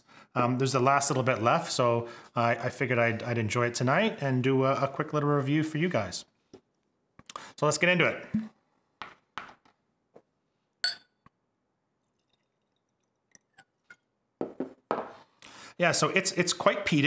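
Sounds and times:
glass clinking on glass: 10.8 - 11.2.

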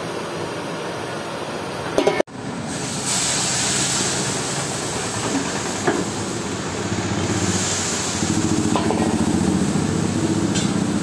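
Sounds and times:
oil frothing and sizzling: 2.6 - 11.0.

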